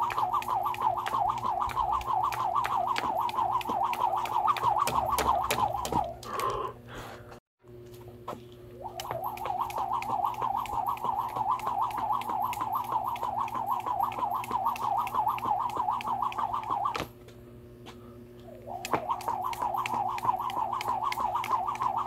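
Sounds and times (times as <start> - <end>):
jump rope whirring and slapping: 0.0 - 6.5, 8.3 - 17.2, 18.6 - 22.0.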